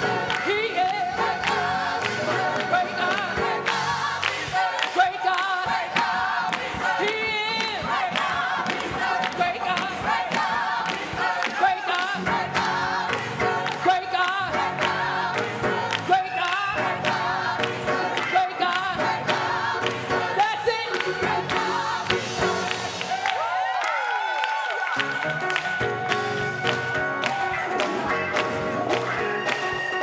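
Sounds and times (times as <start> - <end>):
gospel choir singing: 0.0 - 23.8
hands clapping on the beat: 0.0 - 30.0.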